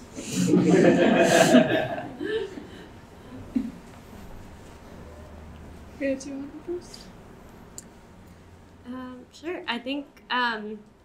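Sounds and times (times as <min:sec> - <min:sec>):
people chuckling and laughing: 0:00.2 - 0:03.8.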